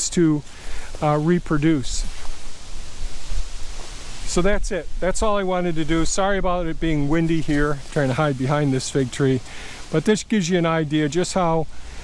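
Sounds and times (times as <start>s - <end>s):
wind buffeting microphone: 1.9s - 9.4s.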